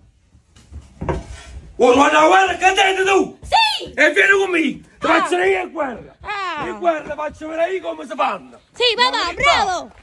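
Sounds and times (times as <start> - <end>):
man's loud voice: 4.0 - 6.0.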